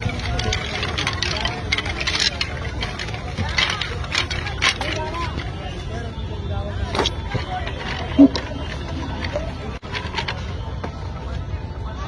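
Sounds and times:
wooden sticks clacking: 0.0 - 5.6, 6.9 - 10.6
voices talking: 0.0 - 12.0.

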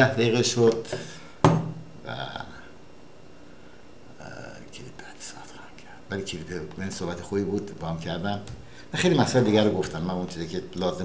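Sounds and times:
man whispering: 4.1 - 6.8.

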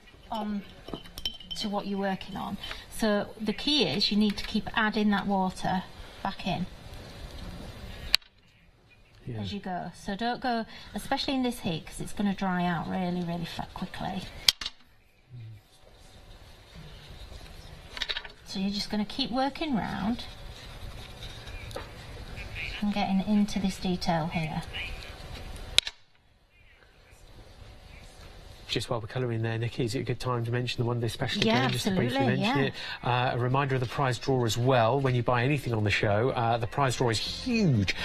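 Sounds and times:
faint room noise: 0.0 - 38.0.

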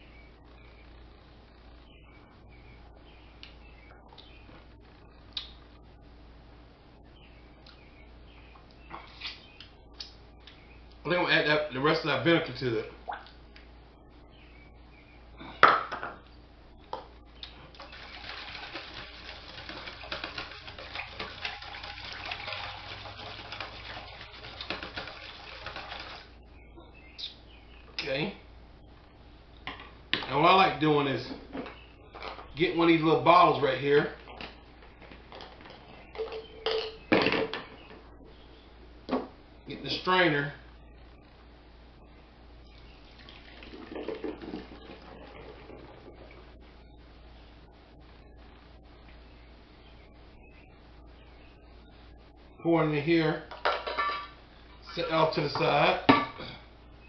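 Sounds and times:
liquid splashing and trickling: 17.6 - 26.4, 43.0 - 46.5.

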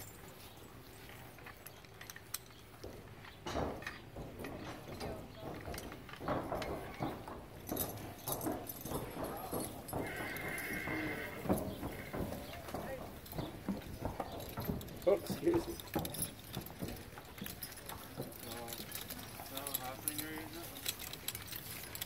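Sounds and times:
hooves clopping on concrete: 0.0 - 22.0
horse whinnying: 10.0 - 12.5.

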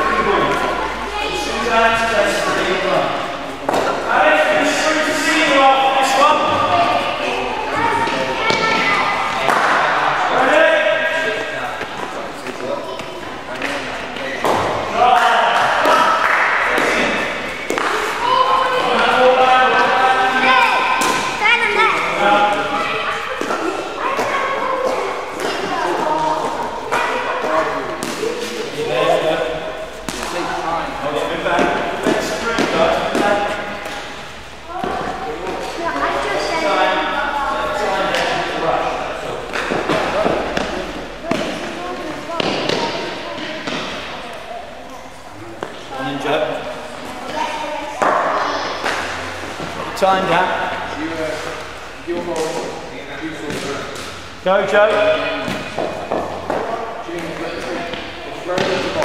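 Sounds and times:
voices talking in a hall: 0.0 - 59.0.

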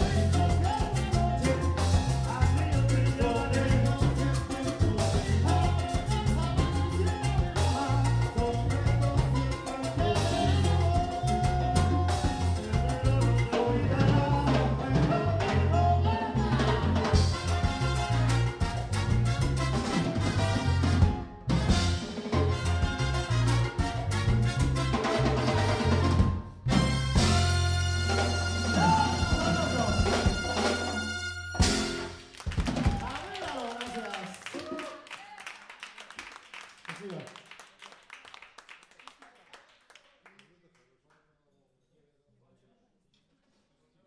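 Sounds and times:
male lead singer: 0.0 - 17.5, 28.7 - 30.8
live salsa band playing: 0.0 - 34.9
people clapping: 32.1 - 41.3.

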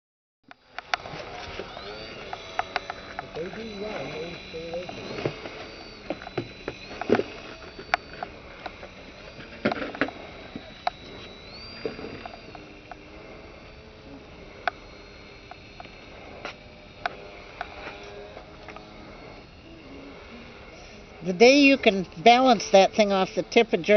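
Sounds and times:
sharp clicks: 0.5 - 13.8, 14.4 - 19.0
model airplane motor whine: 0.5 - 23.9.

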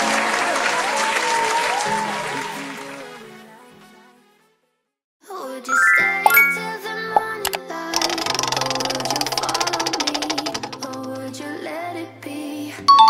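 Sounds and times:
light children's music: 5.3 - 13.0
rising chime run: 5.7 - 6.8
sharp clicks: 7.2 - 11.2
prize wheel ticking: 8.0 - 11.2.

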